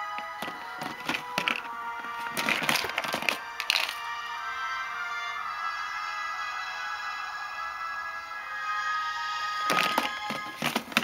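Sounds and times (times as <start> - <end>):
background music: 0.0 - 11.0
plastic boxes clattering: 0.4 - 4.0, 9.7 - 11.0.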